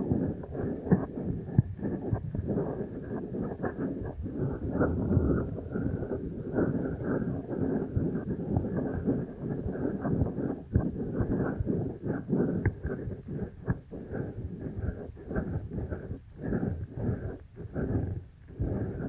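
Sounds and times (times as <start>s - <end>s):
hands rubbing on microphone: 0.6s - 6.0s.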